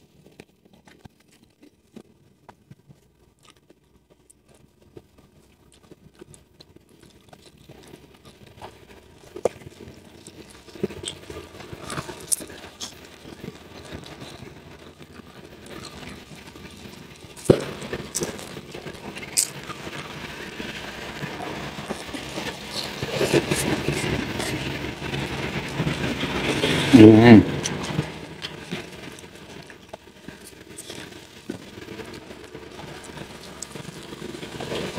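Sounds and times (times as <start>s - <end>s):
mouth sounds: 8.6s - 34.9s.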